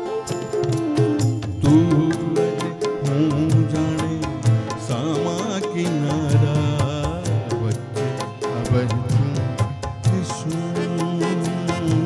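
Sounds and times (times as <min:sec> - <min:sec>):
harmonium chords: 0:00.0 - 0:12.0
percussion beat: 0:00.0 - 0:12.0
man singing: 0:01.6 - 0:12.0.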